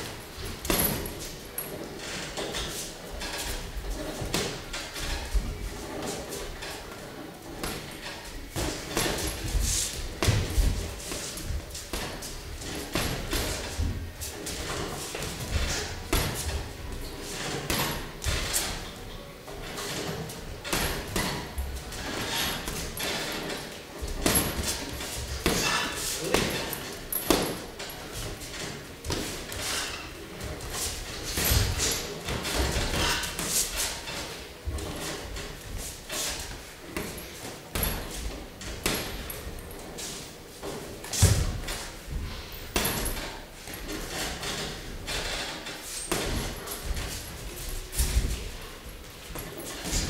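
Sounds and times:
shuffling footwork on canvas: 0.0 - 50.0
boxing gloves punching: 19.7 - 34.0, 36.3 - 39.4, 46.1 - 47.2.

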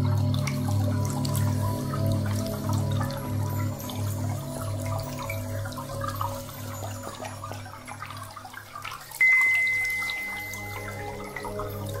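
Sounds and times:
low pulsing drone: 0.0 - 6.8, 9.2 - 12.0
trickling dripping water: 0.0 - 12.0
high bell-like tone: 9.2 - 12.0.

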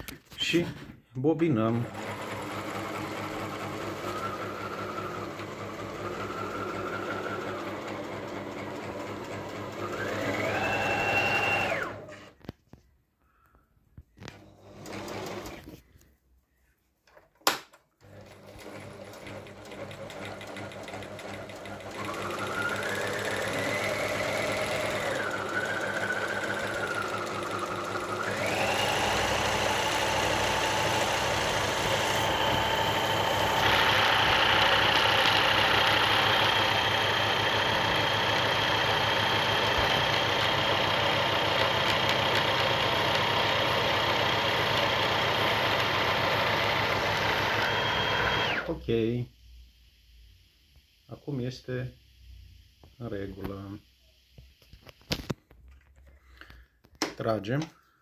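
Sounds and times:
sewing machine motor whining: 1.6 - 12.3, 14.2 - 15.8, 18.0 - 48.8.

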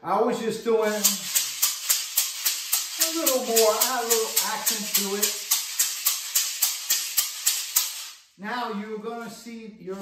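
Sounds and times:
maracas rattling: 0.8 - 8.3.

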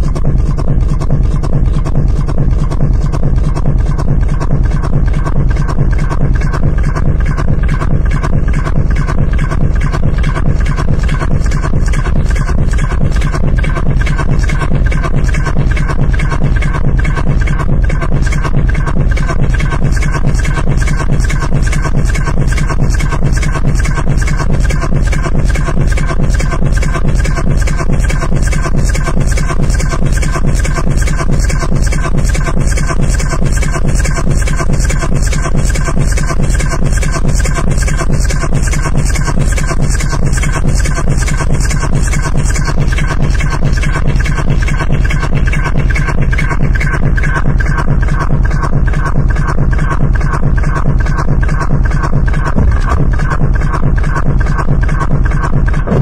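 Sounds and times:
heavy bass: 0.0 - 56.0
repeating synth pattern: 0.0 - 56.0
techno kick drum beat: 0.0 - 56.0.

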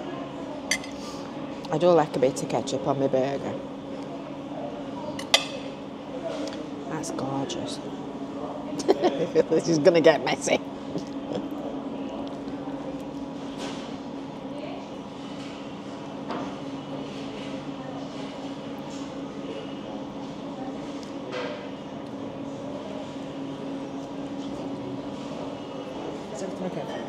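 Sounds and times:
faint background chatter: 0.0 - 27.0
steady mechanical hum: 0.0 - 27.0.

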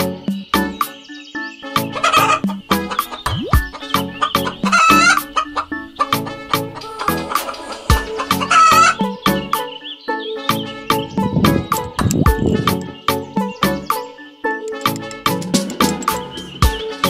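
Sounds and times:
background music with steady beat: 0.0 - 17.0
hen clucking: 1.8 - 9.2.

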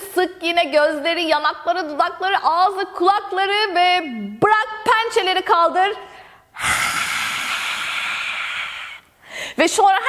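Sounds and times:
woman forcefully exhaling haaa: 6.6 - 9.6.

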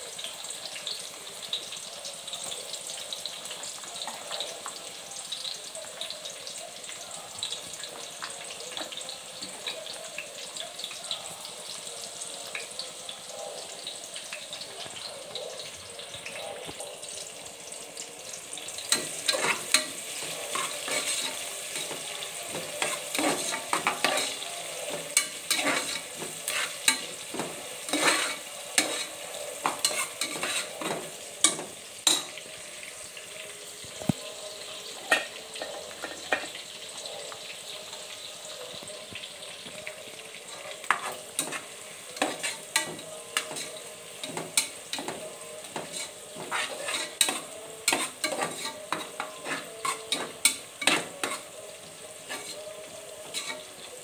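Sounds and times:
onions sizzling in hot oil: 0.0 - 54.0
ladle scraping metal pot: 45.8 - 50.2.

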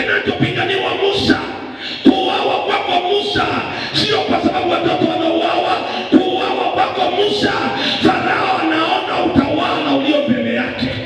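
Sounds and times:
man chanting through a microphone: 0.0 - 11.0.

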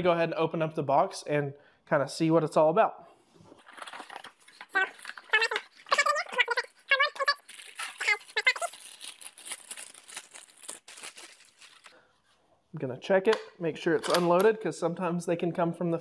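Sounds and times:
cardboard packaging rustling: 3.5 - 12.0
plastic bag crinkling: 3.6 - 12.0.

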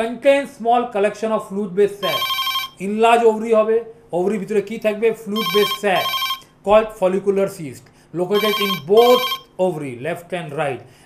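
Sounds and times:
man speaking: 0.0 - 10.9
telephone ringing: 2.0 - 2.8, 5.4 - 6.5, 8.4 - 9.5.

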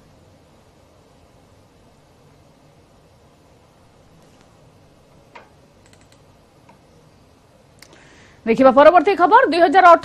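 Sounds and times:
faint background hiss: 0.0 - 10.0
soft clicks: 5.4 - 6.8.

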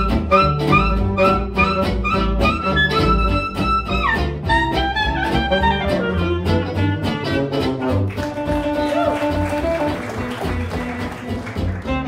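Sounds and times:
strummed guitar beat: 0.0 - 12.0
swing band playing: 0.0 - 12.0
walking bass line: 0.0 - 12.0.

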